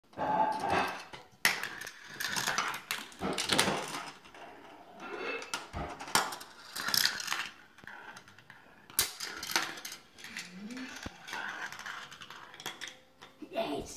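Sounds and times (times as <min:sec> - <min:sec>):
marbles rolling on plastic tracks: 0:00.1 - 0:13.4
marbles clicking and clacking: 0:00.2 - 0:13.4.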